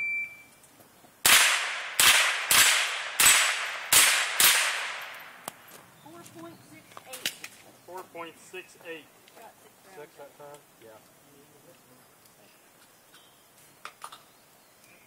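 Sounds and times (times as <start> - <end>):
shot timer beep: 0.0 - 0.5
rifle shots echoing: 1.2 - 5.4.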